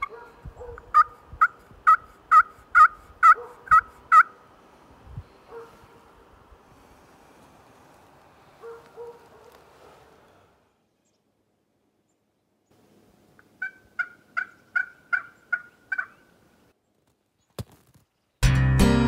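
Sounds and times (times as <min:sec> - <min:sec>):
turkey yelping: 0:00.0 - 0:04.4, 0:13.6 - 0:16.2.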